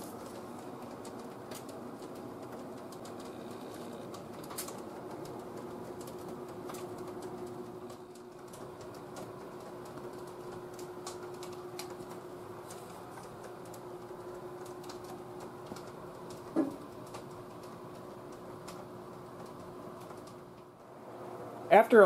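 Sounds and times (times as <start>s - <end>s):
faint clicks and ticks: 0.0s - 20.9s
ventilation fan humming: 0.0s - 22.0s.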